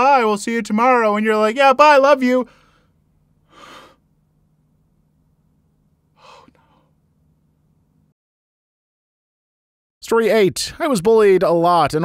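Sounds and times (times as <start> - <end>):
faint low hum: 0.0 - 8.2
man gasping: 2.5 - 4.0, 6.2 - 7.0.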